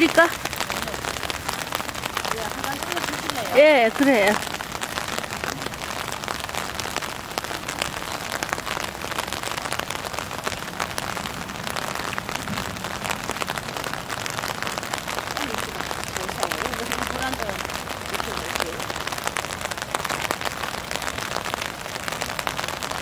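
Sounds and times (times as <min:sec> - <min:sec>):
steady rain falling: 0:00.0 - 0:23.0.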